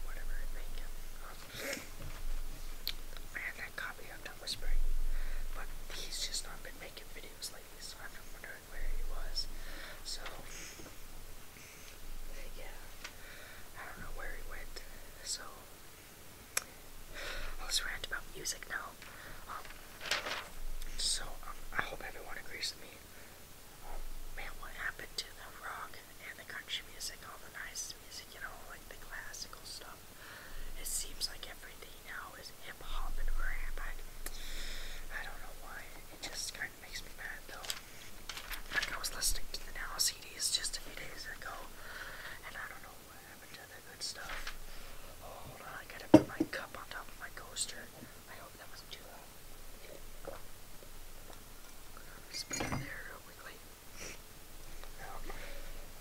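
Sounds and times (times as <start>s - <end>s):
person whispering: 0.0s - 1.7s, 3.3s - 4.8s, 5.5s - 10.8s, 12.3s - 13.0s, 13.8s - 15.7s, 17.6s - 19.7s, 20.8s - 23.1s, 23.8s - 30.0s, 30.8s - 34.0s, 35.1s - 37.8s, 38.6s - 44.5s, 45.1s - 50.4s, 52.0s - 54.2s, 54.8s - 55.7s.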